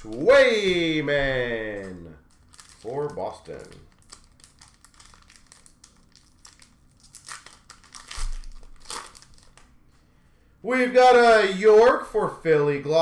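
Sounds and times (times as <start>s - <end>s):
wrapper crinkling and tearing: 1.5s - 9.8s.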